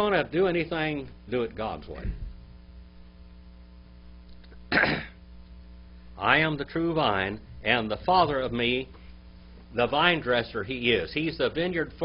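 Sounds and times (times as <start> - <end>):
man speaking: 0.0 - 2.2, 6.2 - 8.9, 9.7 - 12.0
electrical mains hum: 0.0 - 12.0.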